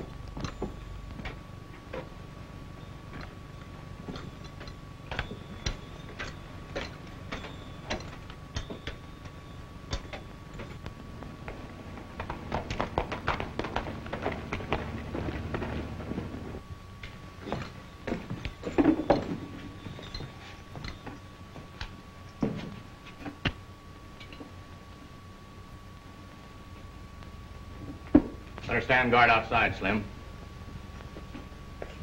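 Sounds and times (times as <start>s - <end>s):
film soundtrack hum and hiss: 0.0s - 32.0s.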